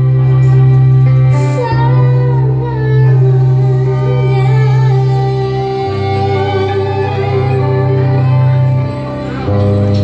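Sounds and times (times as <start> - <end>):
small live band: 0.0 - 10.0
woman singing love song: 1.2 - 8.7.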